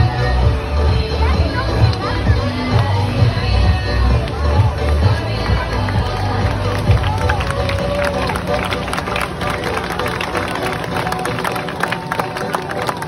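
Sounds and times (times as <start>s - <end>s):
crowd chattering and calling out: 0.0s - 13.0s
music from loudspeakers: 0.0s - 13.0s.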